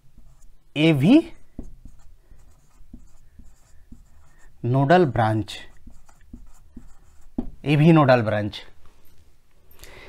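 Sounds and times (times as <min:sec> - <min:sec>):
marker writing on whiteboard: 0:00.0 - 0:07.9
person speaking: 0:00.2 - 0:08.8.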